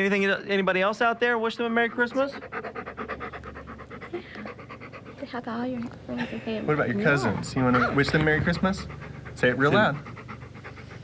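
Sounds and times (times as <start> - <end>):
large dog panting rapidly: 1.4 - 5.7, 7.2 - 11.0.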